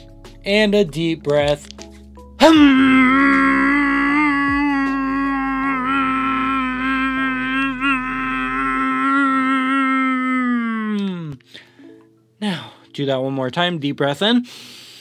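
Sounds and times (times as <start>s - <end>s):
man humming a steady note: 2.4s - 11.4s.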